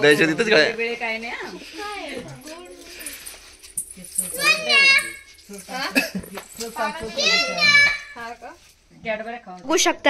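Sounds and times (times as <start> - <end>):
children talking and calling out: 4.1 - 6.0, 6.6 - 8.4.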